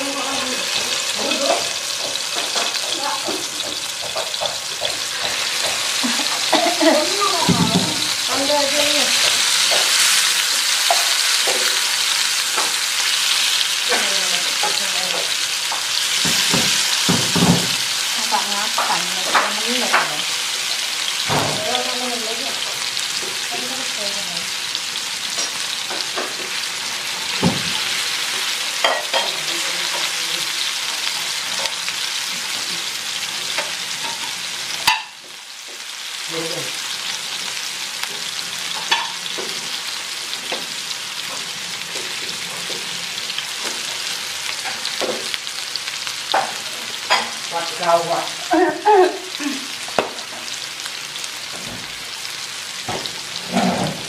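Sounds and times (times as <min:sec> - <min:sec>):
food sizzling in oil: 0:00.0 - 0:54.0
spatula tapping and scraping: 0:00.8 - 0:06.6, 0:07.4 - 0:10.2, 0:10.8 - 0:12.8.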